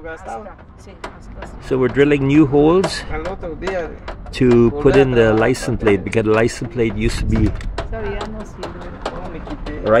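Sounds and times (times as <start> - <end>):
man talking: 1.6 - 7.6.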